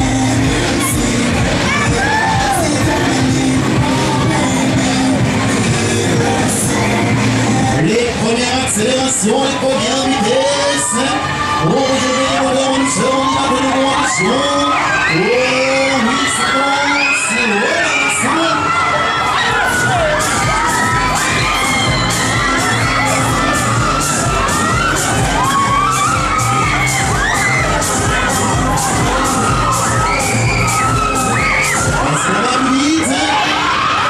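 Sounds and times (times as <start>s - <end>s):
riders screaming and shouting: 0.0s - 5.6s, 6.2s - 34.0s
loud dance music: 0.0s - 34.0s.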